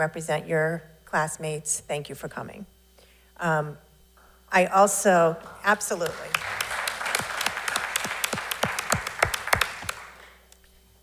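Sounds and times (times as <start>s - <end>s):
crowd applauding: 5.4s - 10.4s
close single hand claps: 6.0s - 10.4s.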